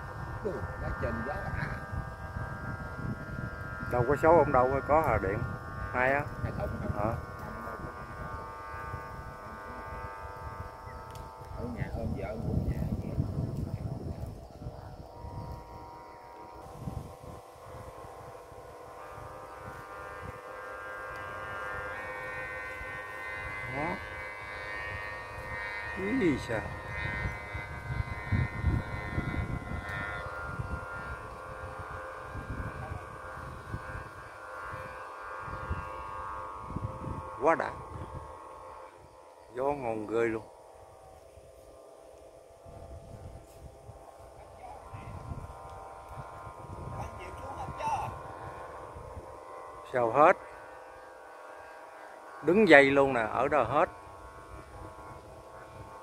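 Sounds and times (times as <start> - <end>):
kite hummer droning hum: 0.0 - 56.0
wind rumble on microphone: 0.0 - 56.0.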